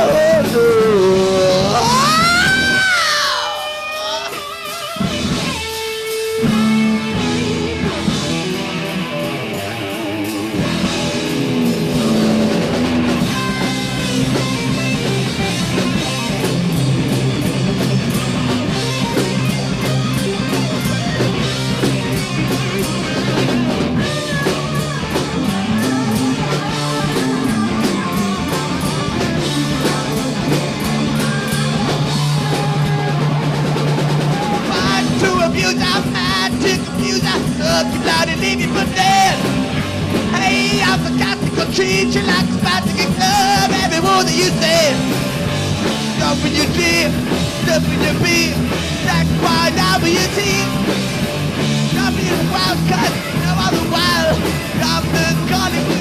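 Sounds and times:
heavy metal band playing: 0.0s - 56.0s.

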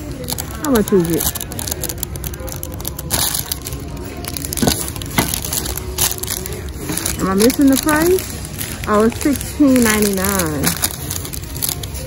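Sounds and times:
cellophane crinkling: 0.0s - 12.0s.

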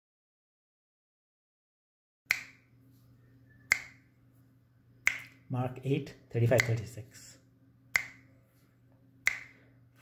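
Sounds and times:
finger snaps: 2.3s - 2.7s, 3.6s - 4.1s, 5.0s - 5.4s, 6.6s - 6.8s, 7.9s - 8.3s, 9.2s - 9.6s.

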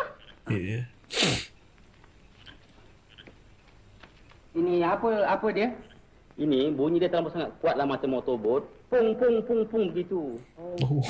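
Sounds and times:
person sneezing: 0.5s - 1.5s.

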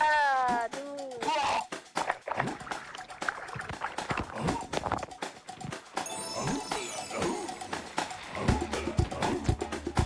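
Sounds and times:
background music: 0.0s - 10.0s
water sloshing and bubbling: 1.5s - 10.0s.

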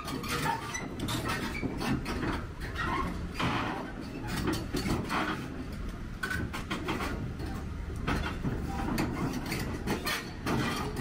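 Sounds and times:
metallic squeaks and clanks: 0.0s - 5.5s, 6.2s - 11.0s
heavy machinery engine rumble: 0.0s - 11.0s.

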